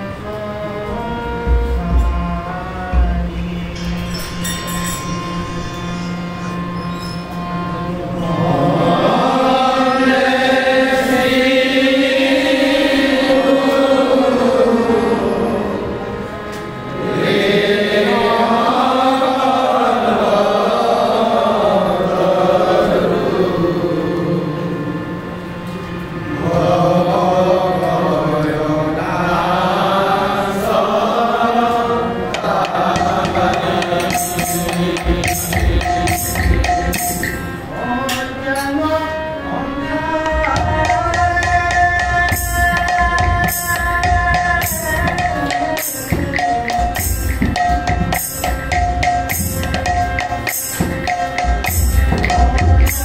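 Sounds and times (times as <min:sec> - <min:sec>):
harmonium sustained chord: 0:00.0 - 0:53.0
voices chanting a devotional melody: 0:00.0 - 0:53.0.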